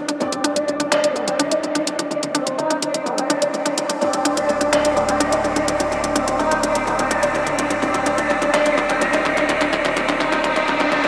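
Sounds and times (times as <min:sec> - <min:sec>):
fast ticking high percussion: 0:00.0 - 0:11.0
sustained synth pad: 0:04.0 - 0:11.0.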